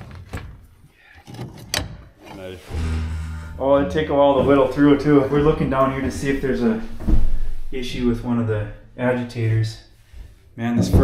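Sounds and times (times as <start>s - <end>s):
background music with low note: 2.7s - 5.6s.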